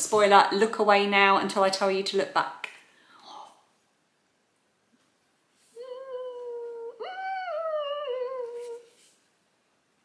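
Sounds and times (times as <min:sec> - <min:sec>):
woman humming: 0:05.7 - 0:09.0.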